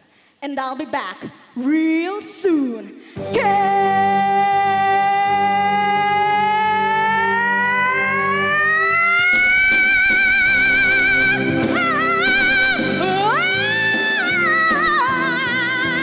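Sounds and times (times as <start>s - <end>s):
instrumental backing track: 3.2s - 16.0s.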